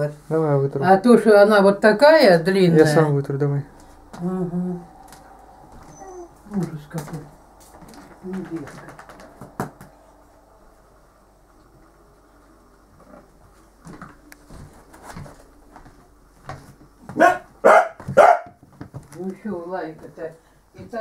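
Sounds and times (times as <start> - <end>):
dog barking: 17.1 - 18.6.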